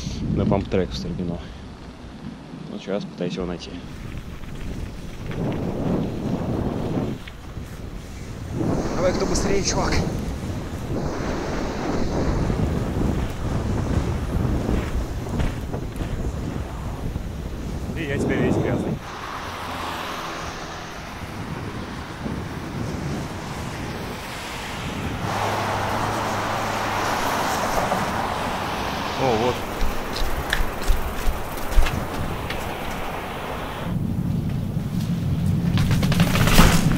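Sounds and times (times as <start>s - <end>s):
road and traffic noise: 0.0s - 36.9s
wind buffeting microphone: 3.6s - 36.9s
steady hiss: 7.9s - 17.0s, 25.2s - 33.9s.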